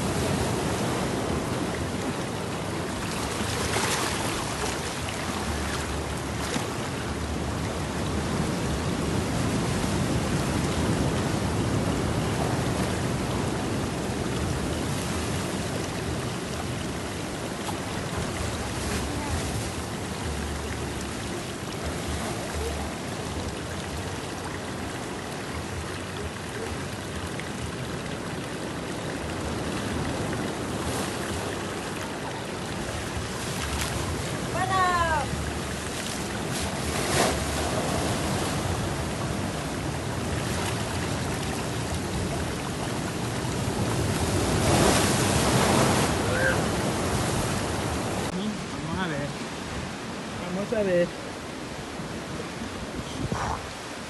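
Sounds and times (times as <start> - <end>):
ocean surf breaking on rocks: 0.0 - 27.1, 27.7 - 54.0.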